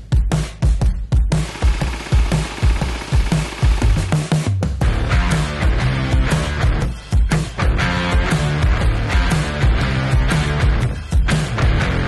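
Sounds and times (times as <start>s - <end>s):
electronic music with kick drum: 0.0s - 12.0s.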